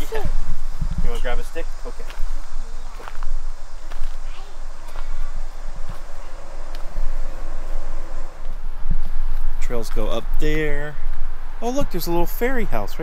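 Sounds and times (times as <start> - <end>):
footsteps on dirt trail: 0.0 - 10.2
low microphone rumble: 0.0 - 11.6.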